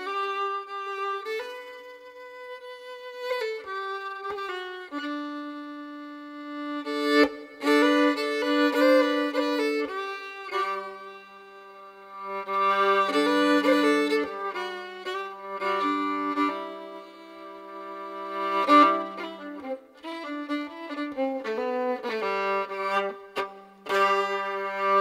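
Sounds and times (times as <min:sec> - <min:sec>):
fiddle melody: 0:00.0 - 0:25.0.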